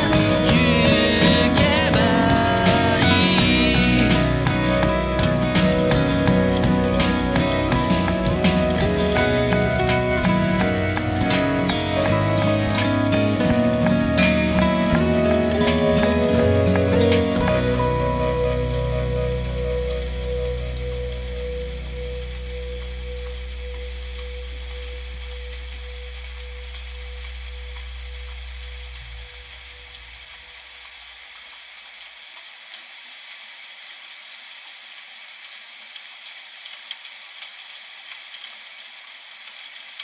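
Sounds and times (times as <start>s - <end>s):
sustained song chord: 0.0s - 30.4s
steady rain-like hiss: 0.0s - 40.0s.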